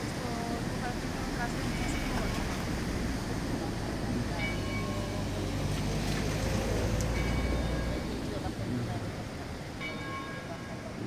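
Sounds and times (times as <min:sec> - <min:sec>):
faint voices: 0:00.0 - 0:11.0
church bell tolling: 0:07.2 - 0:08.1, 0:09.8 - 0:11.0.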